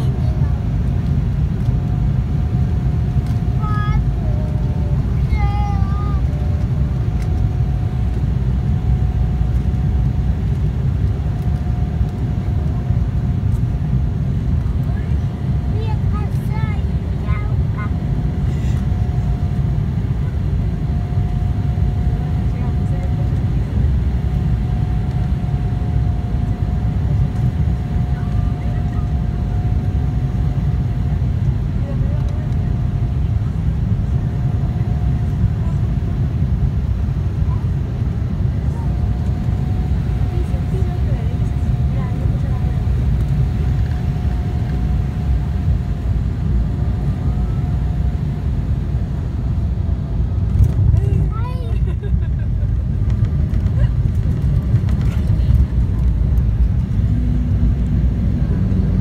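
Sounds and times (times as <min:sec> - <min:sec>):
engine whine: 0:00.0 - 0:59.0
jet engine rumble: 0:00.0 - 0:59.0.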